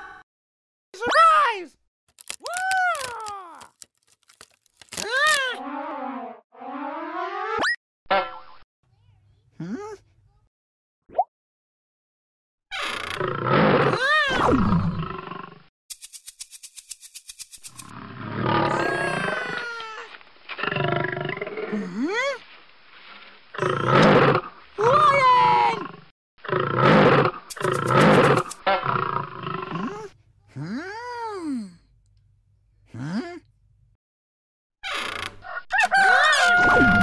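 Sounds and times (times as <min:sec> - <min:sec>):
cartoon roaring cries and squeals: 0:04.9 - 0:07.6, 0:13.5 - 0:15.0, 0:18.6 - 0:20.1, 0:23.6 - 0:25.8, 0:35.6 - 0:37.0.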